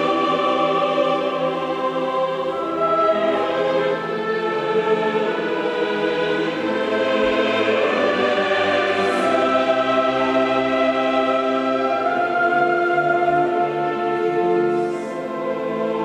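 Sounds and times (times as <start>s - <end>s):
choir singing sustained chords: 0.0s - 16.0s
symphony orchestra: 0.0s - 16.0s.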